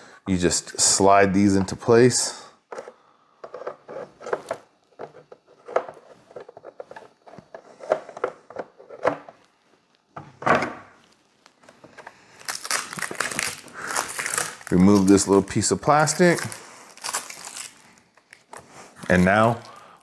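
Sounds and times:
plastic rustling: 0:11.0 - 0:19.8.

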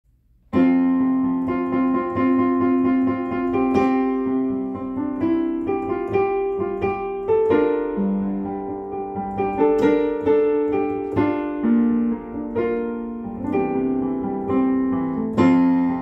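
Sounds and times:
piano chords and melody: 0:00.1 - 0:16.0.

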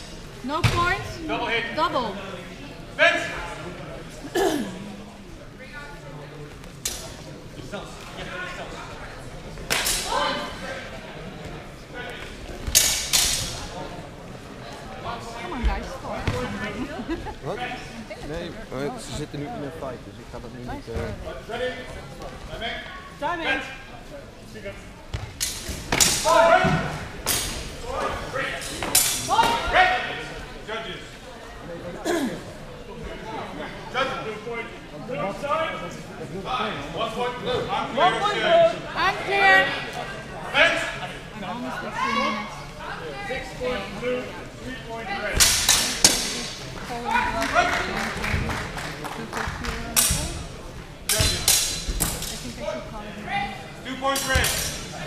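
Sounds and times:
fencing swords clashing: 0:09.7 - 0:10.2, 0:12.7 - 0:13.7, 0:25.4 - 0:26.5, 0:28.6 - 0:29.6, 0:45.4 - 0:46.6, 0:51.1 - 0:52.6, 0:54.1 - 0:54.9.

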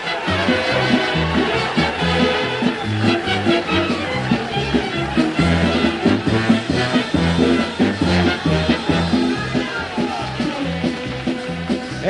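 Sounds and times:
band playing instrumental song: 0:00.0 - 0:12.0.

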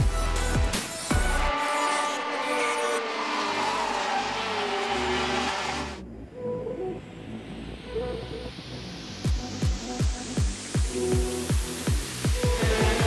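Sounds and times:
music: 0:00.0 - 0:01.6, 0:05.6 - 0:13.0
kart engines revving high: 0:01.1 - 0:06.0, 0:12.4 - 0:13.0.

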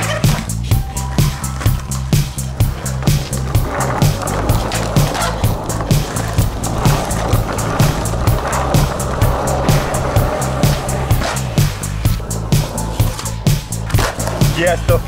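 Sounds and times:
backing music with drums and bass: 0:00.0 - 0:15.0
skateboard wheels rolling on concrete: 0:00.0 - 0:15.0.

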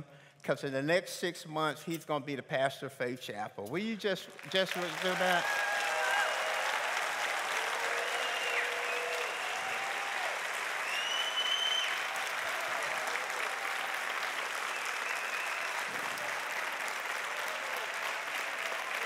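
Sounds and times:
crowd applauding: 0:04.3 - 0:19.0.

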